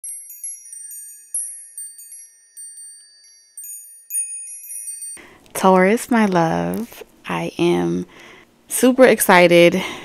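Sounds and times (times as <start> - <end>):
chimes ringing: 0.0 - 5.4.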